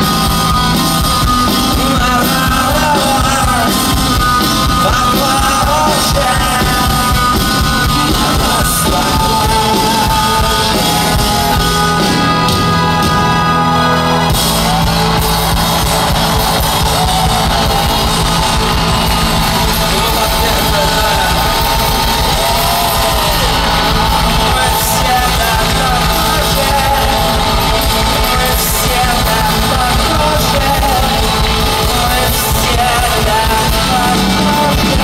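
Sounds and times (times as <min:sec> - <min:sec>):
drum kit: 0:00.0 - 0:35.0
live rock band playing: 0:00.0 - 0:35.0
man singing: 0:01.4 - 0:14.8, 0:16.9 - 0:35.0.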